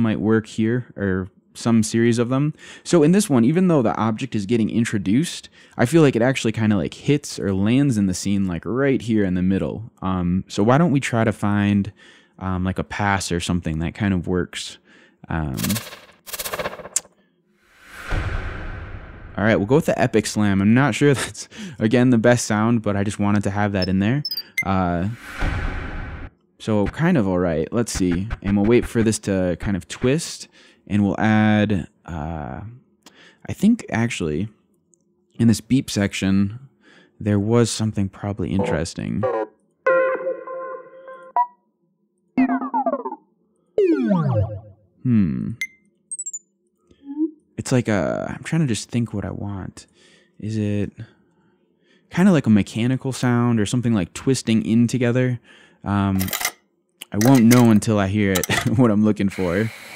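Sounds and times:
cinematic slam impact: 0:18.0 - 0:19.7, 0:25.2 - 0:26.3
tone with falling glides: 0:42.4 - 0:43.2, 0:43.8 - 0:44.8.

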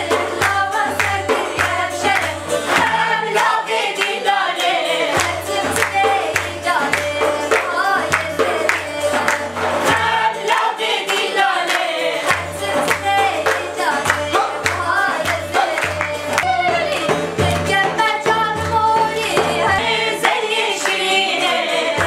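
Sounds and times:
hand-clapping: 0:00.0 - 0:22.0
women singing in unison: 0:00.0 - 0:22.0.

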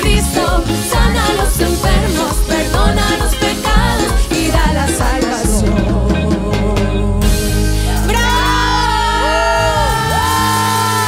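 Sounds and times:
singers holding long notes: 0:00.0 - 0:11.0
worship band playing: 0:00.0 - 0:11.0.

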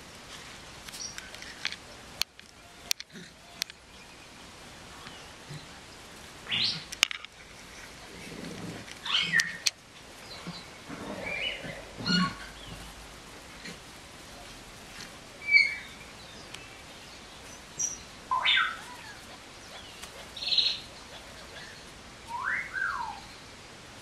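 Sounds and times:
puppies squeaking and yelping: 0:08.9 - 0:09.8, 0:10.4 - 0:13.0, 0:17.8 - 0:21.9.

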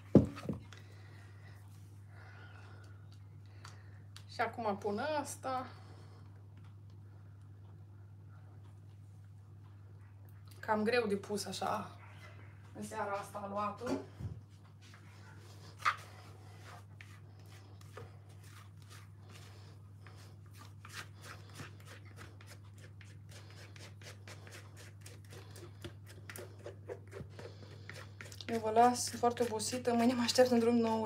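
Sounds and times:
low steady hum: 0:00.0 - 0:31.0
spatula scraping metal bowl: 0:20.8 - 0:31.0.

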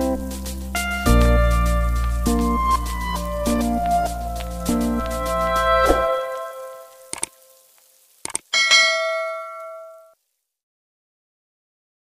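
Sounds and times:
bright bell chime: 0:08.6 - 0:10.1.

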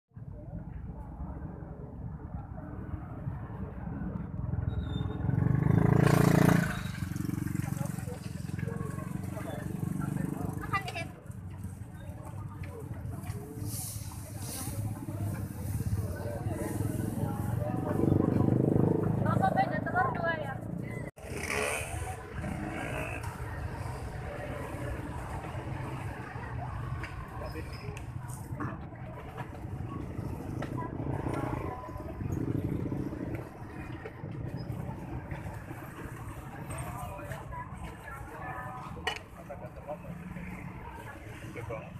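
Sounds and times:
traffic hum: 0:00.2 - 0:41.9
passing vehicle engine: 0:02.9 - 0:10.8, 0:13.1 - 0:41.9
people talking: 0:07.4 - 0:41.9.

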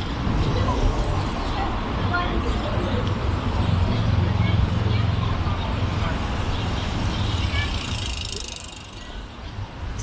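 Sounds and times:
faint voices of passers-by: 0:00.0 - 0:10.0.

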